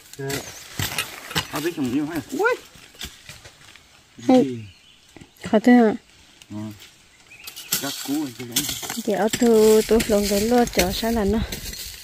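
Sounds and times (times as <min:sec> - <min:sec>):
digging tool striking ground: 0:00.2 - 0:02.0, 0:07.5 - 0:12.0.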